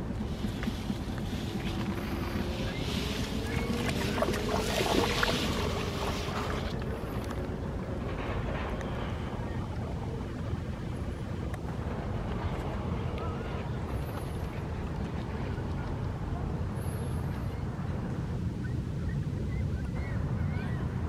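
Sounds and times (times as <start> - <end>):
water splashing and sloshing: 0.0 - 8.8
steady low rumble: 0.0 - 19.4.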